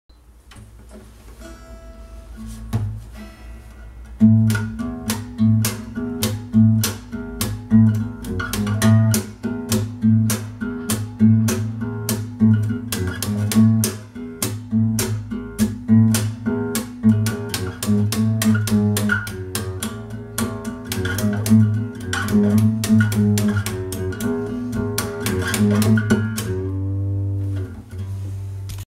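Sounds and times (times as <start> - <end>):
acoustic guitar slap groove: 0.5 - 28.9.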